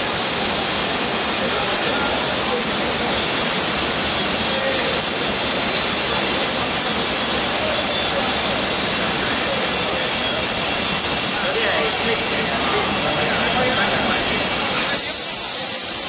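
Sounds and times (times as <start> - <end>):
foundry machinery roar: 0.0 - 16.0.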